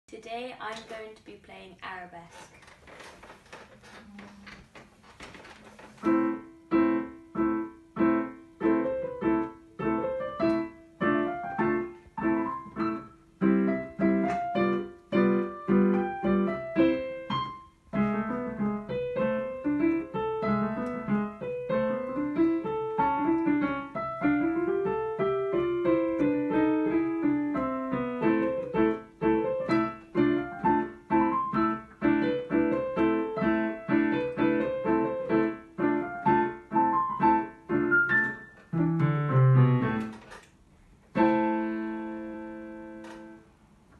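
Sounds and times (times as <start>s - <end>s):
digital piano playing: 6.0s - 40.4s, 41.1s - 43.5s.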